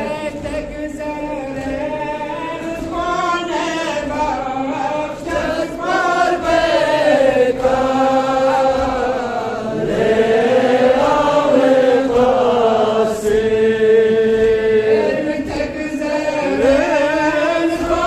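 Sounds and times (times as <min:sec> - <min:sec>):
man chanting a lament: 0:00.0 - 0:05.7, 0:12.9 - 0:18.0.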